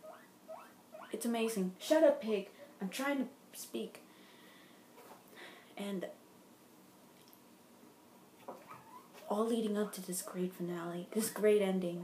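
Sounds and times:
guinea pig calling: 0.0s - 1.2s, 8.6s - 10.5s.

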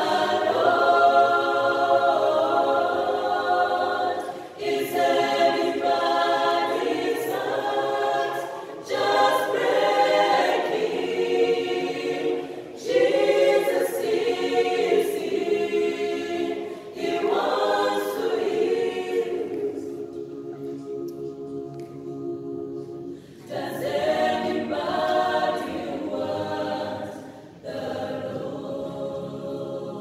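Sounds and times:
mixed choir singing a cappella: 0.0s - 30.0s.

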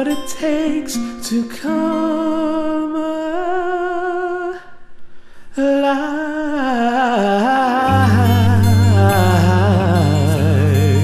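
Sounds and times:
person singing wordless notes: 5.6s - 11.0s.

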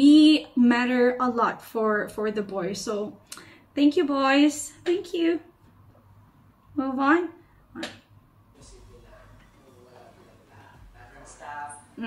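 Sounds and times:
steady low hum: 1.1s - 12.0s.

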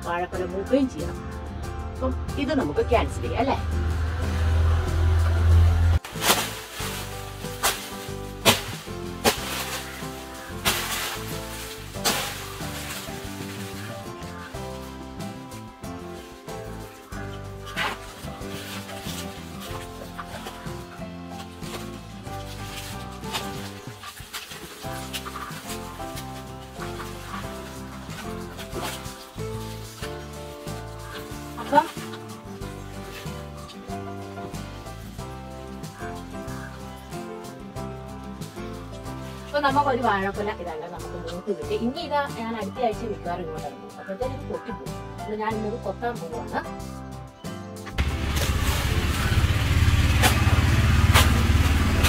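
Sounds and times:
instrumental background music: 0.0s - 52.0s.

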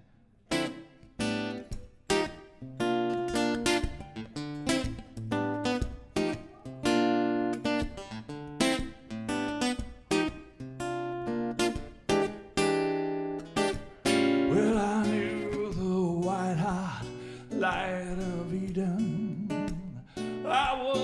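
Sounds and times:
acoustic guitar chords: 0.0s - 21.0s
man singing: 14.4s - 21.0s.

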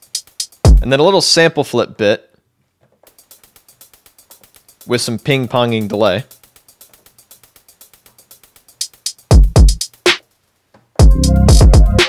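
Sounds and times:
rapid electronic ticking: 0.0s - 0.9s, 3.1s - 10.2s, 11.0s - 12.0s.

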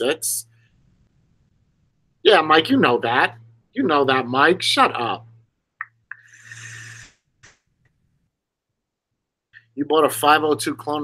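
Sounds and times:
vape airflow hiss and whistle: 6.1s - 7.2s
person exhaling: 6.2s - 7.1s.

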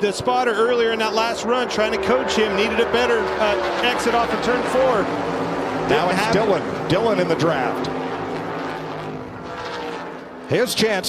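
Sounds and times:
race car engines droning: 0.0s - 11.0s.

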